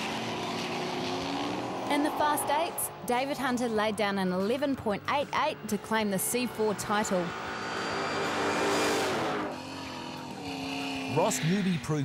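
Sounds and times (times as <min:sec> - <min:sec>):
cars passing at speed: 0:00.0 - 0:03.5, 0:05.7 - 0:11.6
background music: 0:00.0 - 0:12.0.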